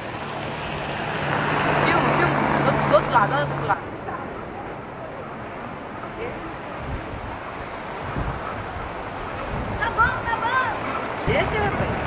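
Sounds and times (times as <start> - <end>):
passing vehicle rushing: 0.0 - 12.0.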